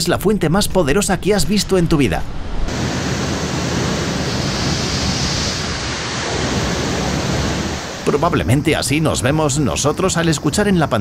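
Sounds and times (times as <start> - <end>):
heavy rush of gushing water: 2.7 - 8.8.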